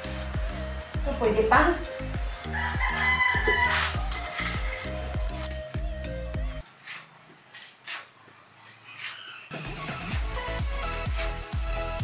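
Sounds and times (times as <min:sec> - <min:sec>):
background music with steady beat: 0:00.0 - 0:07.7, 0:09.0 - 0:12.0.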